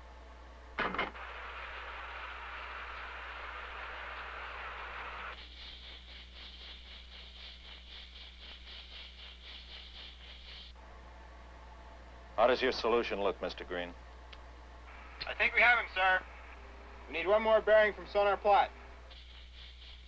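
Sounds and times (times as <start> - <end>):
underwater hiss: 1.4 - 10.8.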